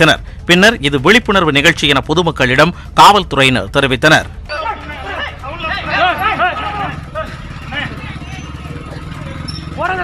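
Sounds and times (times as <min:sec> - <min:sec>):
motorcycle engines idling: 0:00.0 - 0:10.0
people's voices: 0:04.2 - 0:10.0.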